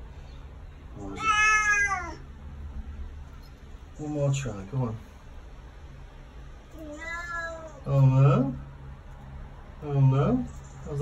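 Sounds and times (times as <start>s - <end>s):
low outdoor rumble: 0.0s - 11.0s
cat meowing: 1.0s - 2.3s, 6.8s - 7.9s.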